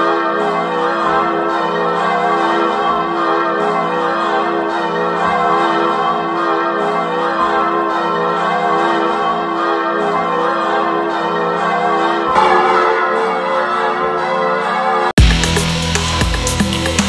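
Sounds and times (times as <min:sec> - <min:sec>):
church bells pealing: 0:00.0 - 0:15.2.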